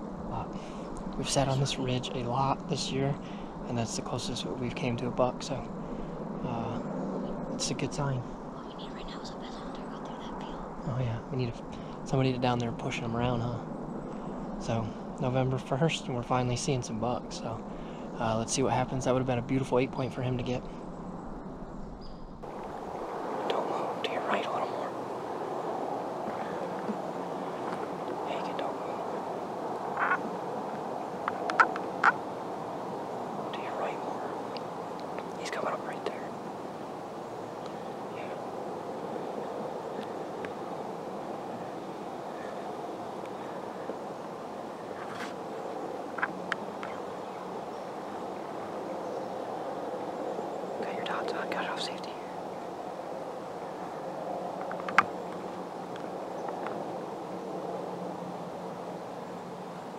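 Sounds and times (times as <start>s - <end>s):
background hiss: 0.0s - 59.9s
faint hushed voices: 23.4s - 25.0s, 26.3s - 29.2s, 33.5s - 34.5s, 35.2s - 36.4s, 37.7s - 38.5s, 50.8s - 52.4s.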